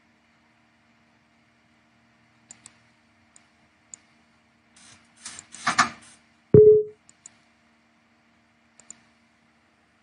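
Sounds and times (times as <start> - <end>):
loud thump with ringing tone: 6.6 - 6.9
mouse clicks: 8.8 - 9.0.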